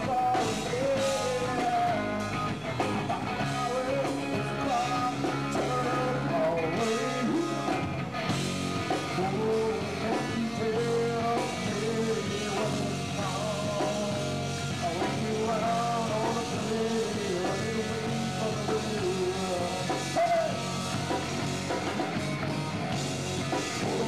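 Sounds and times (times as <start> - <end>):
person singing: 0.0 - 7.8, 8.9 - 21.2, 23.3 - 24.0
live rock band playing: 0.0 - 24.0.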